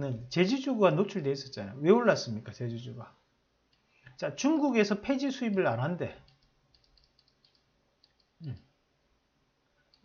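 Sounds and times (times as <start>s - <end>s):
computer mouse clicks: 5.5s - 8.7s
man murmuring: 8.4s - 8.7s.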